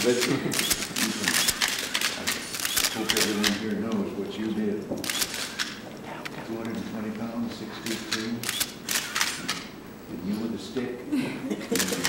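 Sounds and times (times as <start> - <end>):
camera shutters clicking: 0.0 - 4.0, 5.0 - 6.8, 7.8 - 9.8, 11.7 - 12.0.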